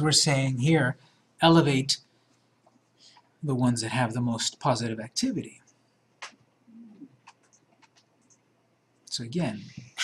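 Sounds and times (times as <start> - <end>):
low murmured hum: 2.6 - 10.0.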